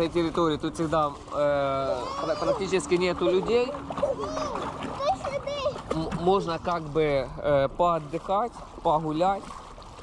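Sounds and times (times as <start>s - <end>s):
water splashing in pool: 0.7s - 10.0s
toddler babbling and calling: 4.0s - 5.8s.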